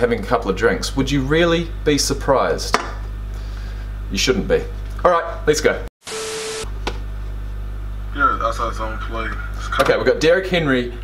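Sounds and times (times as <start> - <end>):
steady low hum: 0.0 - 5.9, 6.6 - 11.0
static hiss glitch effect: 6.1 - 6.7.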